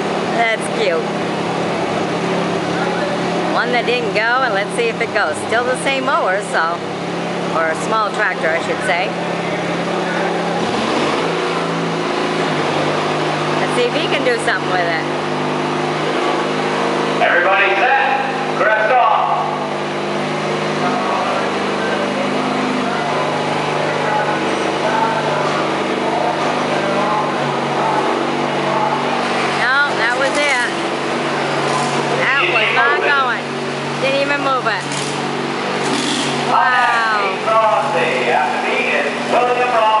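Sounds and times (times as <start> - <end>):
tractor engine running: 0.0 - 40.0
voices: 0.0 - 40.0.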